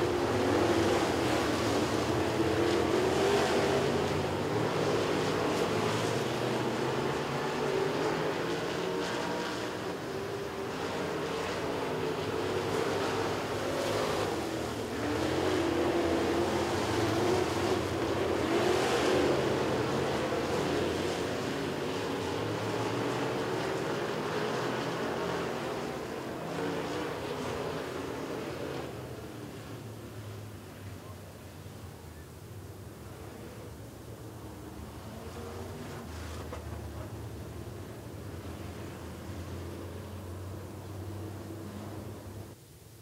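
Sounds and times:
race car engines racing: 0:00.0 - 0:42.6.

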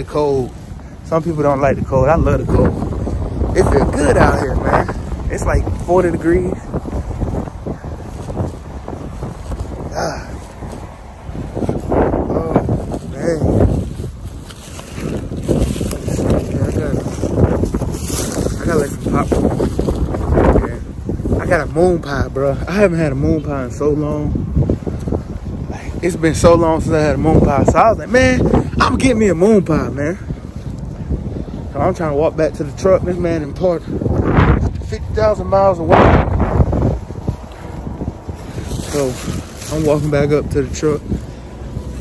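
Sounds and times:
wind buffeting microphone: 0:00.0 - 0:42.0.

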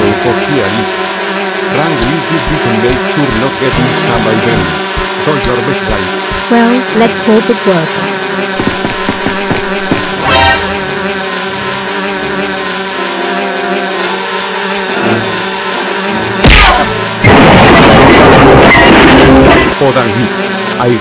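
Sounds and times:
video game music: 0:00.0 - 0:21.0
long noisy crashing sound effect: 0:16.4 - 0:19.8
loud crash: 0:16.4 - 0:19.8.

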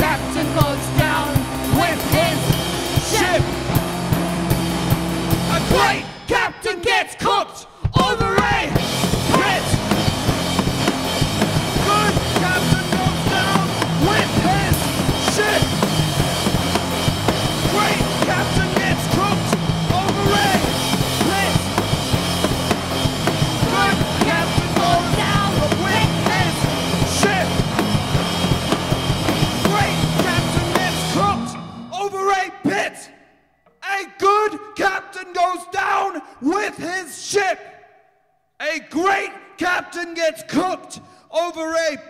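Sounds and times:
bass guitar: 0:00.0 - 0:06.2, 0:08.0 - 0:32.0
drum kit: 0:00.0 - 0:06.4, 0:07.8 - 0:32.2.

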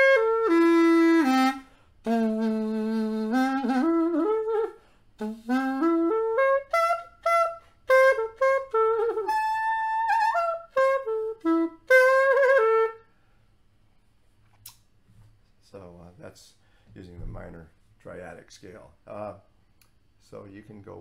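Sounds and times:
pocket sax melody: 0:00.0 - 0:13.2.

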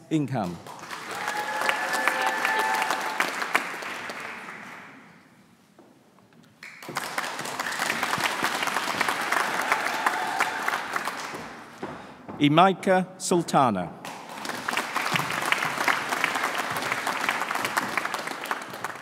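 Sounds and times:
audience applause: 0:00.7 - 0:05.0, 0:06.6 - 0:11.8, 0:14.1 - 0:19.0
person cheering: 0:01.1 - 0:03.2, 0:09.5 - 0:10.8.

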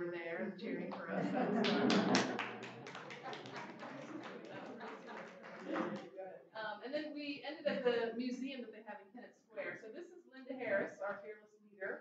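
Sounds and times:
people clapping: 0:00.8 - 0:06.2.

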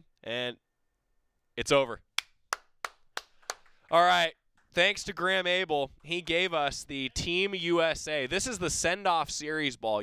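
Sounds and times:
sharp hand claps: 0:02.2 - 0:03.8.

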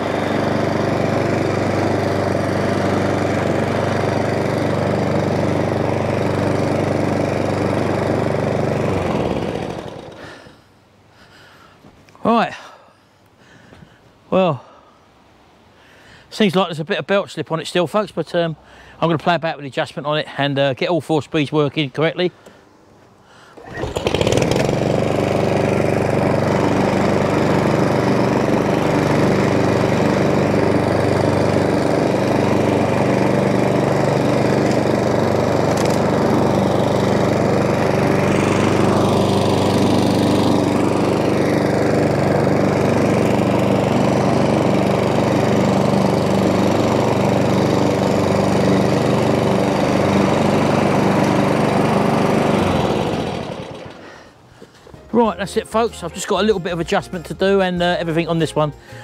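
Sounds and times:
lawn mower engine running: 0:00.0 - 0:10.5, 0:23.5 - 0:54.4.

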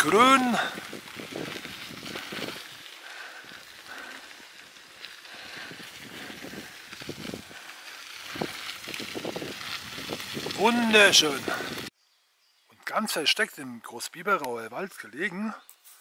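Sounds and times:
bicycle rolling: 0:00.0 - 0:11.9
wind noise: 0:00.0 - 0:11.9.

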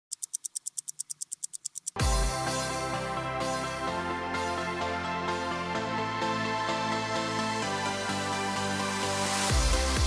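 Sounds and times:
rapid high ticking: 0:00.0 - 0:02.0
electronic theme music: 0:01.2 - 0:10.0.

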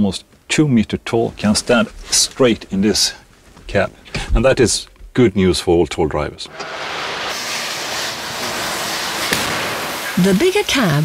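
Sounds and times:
steady rushing noise: 0:06.5 - 0:11.0.

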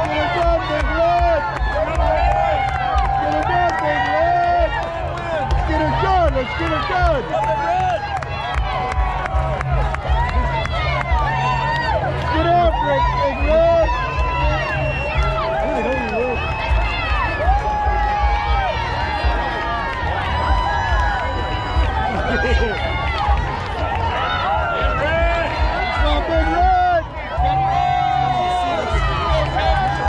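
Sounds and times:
crowd shouting and cheering: 0:00.0 - 0:30.0.

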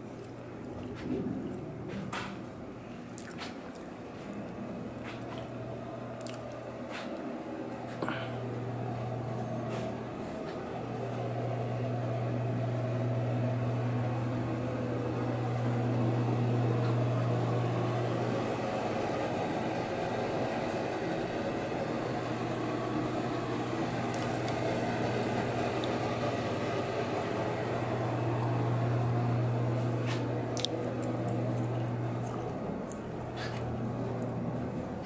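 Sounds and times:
ventilation hum: 0:00.0 - 0:35.0.

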